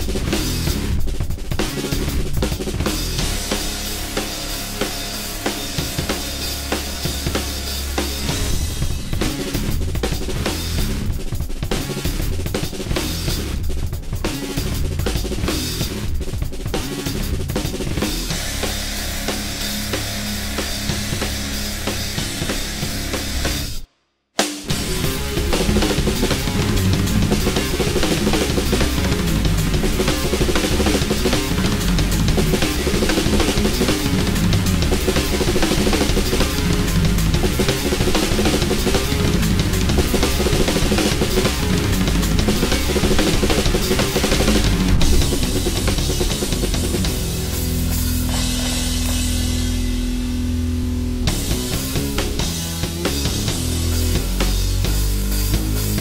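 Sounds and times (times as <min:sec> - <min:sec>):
distorted guitar and bass riff: 0:00.0 - 0:23.8, 0:24.7 - 0:56.0
rock drum kit: 0:00.0 - 0:56.0.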